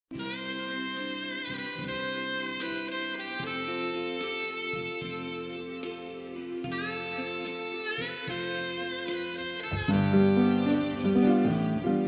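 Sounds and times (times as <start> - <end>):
instrumental trot music: 0.1 - 12.0.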